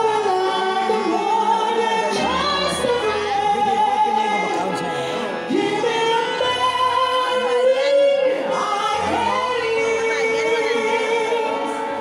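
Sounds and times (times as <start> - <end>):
music with singing voices: 0.0 - 12.0.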